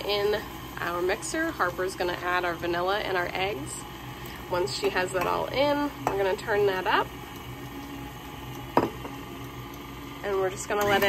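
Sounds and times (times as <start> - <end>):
stand mixer motor running: 0.0 - 11.0.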